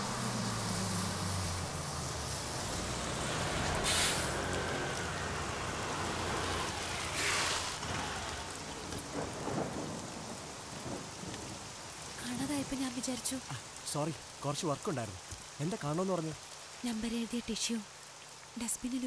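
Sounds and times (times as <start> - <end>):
bus engine running: 0.0 - 9.2
heavy rain falling: 0.0 - 19.0
short hisses: 3.8 - 4.4.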